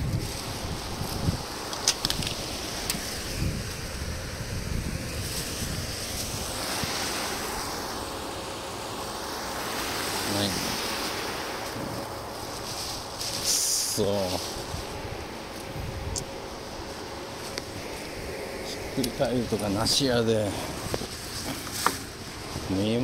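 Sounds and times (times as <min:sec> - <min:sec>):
wind buffeting microphone: 0:00.0 - 0:23.0
plastic bag rustling: 0:10.5 - 0:15.8.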